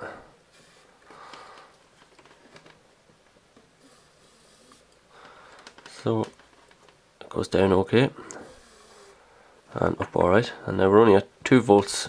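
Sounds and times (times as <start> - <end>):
handling sounds: 0.6 - 3.8
small gear motor whirring: 8.4 - 9.2.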